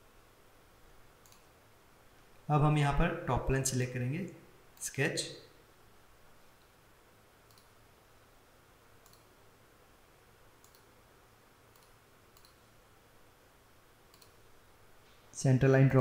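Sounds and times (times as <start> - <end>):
computer mouse clicks: 1.2 - 1.5, 7.4 - 7.8, 9.0 - 9.3, 10.6 - 10.9, 11.7 - 12.7, 14.1 - 14.5.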